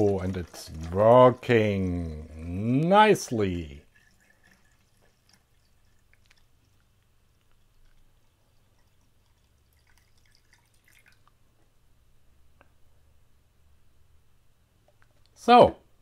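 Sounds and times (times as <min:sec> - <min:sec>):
water dripping into tin can: 0:00.0 - 0:11.4.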